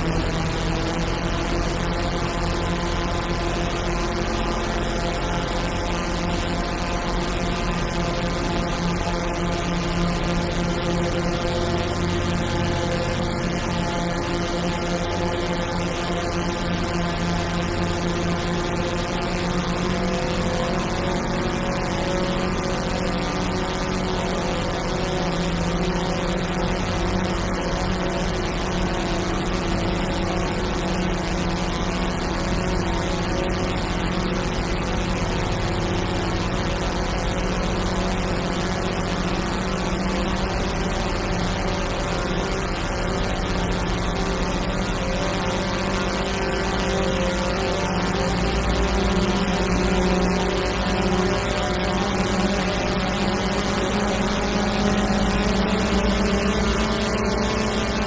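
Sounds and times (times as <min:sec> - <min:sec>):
synthesizer drone: 0:00.0 - 0:58.0.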